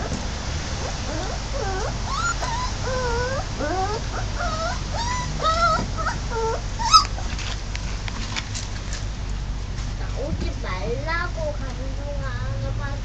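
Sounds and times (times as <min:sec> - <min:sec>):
dog whimpering: 0:00.8 - 0:07.3.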